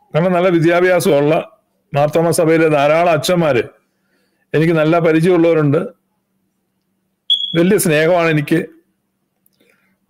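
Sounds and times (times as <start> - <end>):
high-pitched steady tone: 7.3 - 7.8
man speaking: 7.5 - 8.8.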